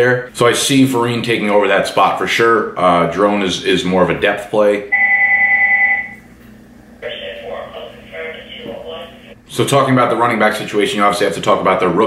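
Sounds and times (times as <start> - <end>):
electronic alert tone: 4.9 - 6.2.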